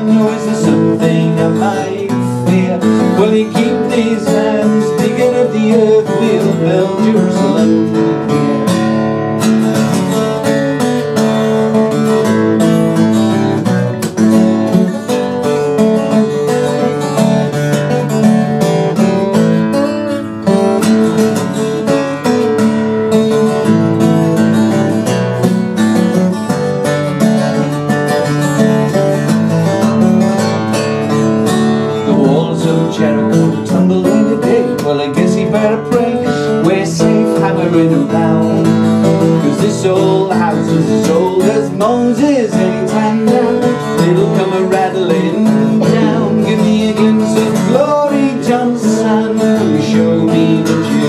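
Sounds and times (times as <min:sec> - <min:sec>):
solo acoustic guitar: 0:00.0 - 0:51.0.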